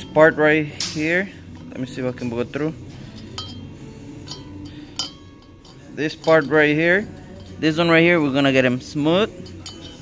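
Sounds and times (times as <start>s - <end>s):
metal bit clinking on metal: 3.1s - 10.0s.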